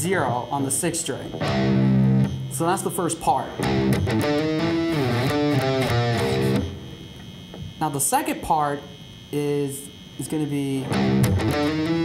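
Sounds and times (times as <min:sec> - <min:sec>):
low electric guitar riff: 0:01.3 - 0:07.2, 0:10.8 - 0:12.0.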